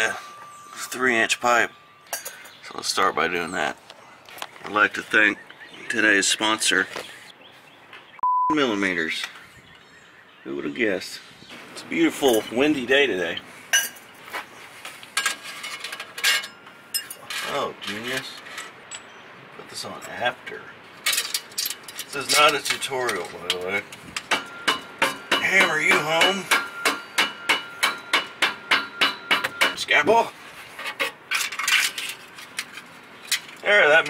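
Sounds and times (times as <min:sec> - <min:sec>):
metal pipe fittings clinking: 0:00.0 - 0:03.8, 0:13.3 - 0:14.1, 0:15.2 - 0:19.1, 0:21.0 - 0:29.9
metal scraping on metal: 0:15.2 - 0:18.8.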